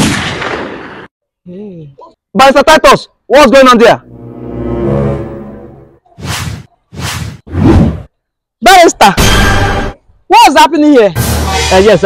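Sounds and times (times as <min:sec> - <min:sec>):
short whooshes: 0:06.2 - 0:08.1.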